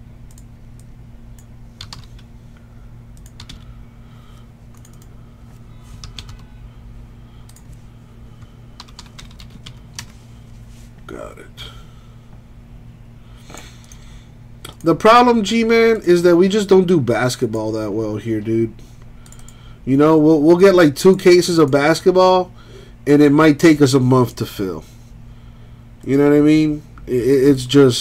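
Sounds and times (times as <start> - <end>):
steady low hum: 0.0 - 28.0.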